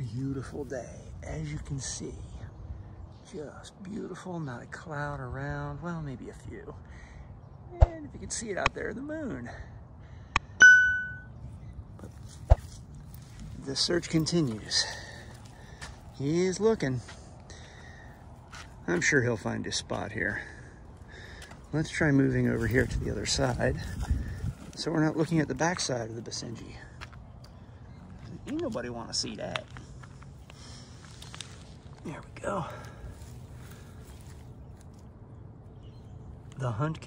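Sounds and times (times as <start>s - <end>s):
man's voice: 0.0s - 2.5s, 21.7s - 24.1s.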